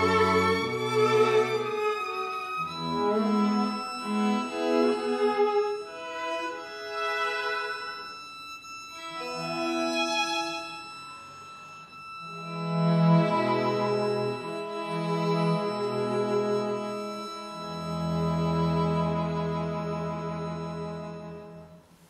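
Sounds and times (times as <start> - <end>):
string quartet bowed notes: 0.0 - 22.0.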